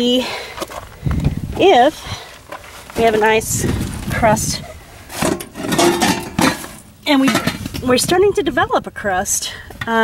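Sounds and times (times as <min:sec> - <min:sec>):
rubbing and scraping on metal and glass: 0:02.5 - 0:08.1.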